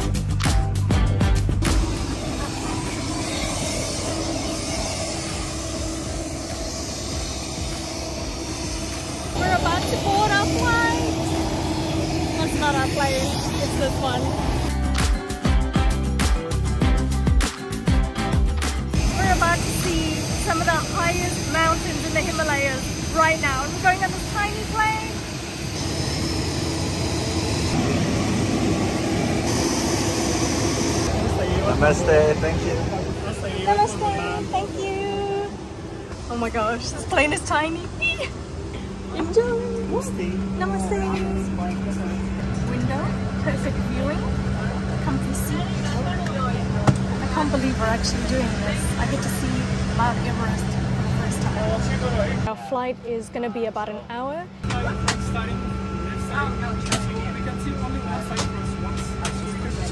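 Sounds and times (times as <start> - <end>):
engine drone: 0.0 - 59.9
faint high whine: 1.8 - 14.7, 19.0 - 46.6, 54.6 - 59.9
people's voices: 1.8 - 15.0, 30.9 - 59.9.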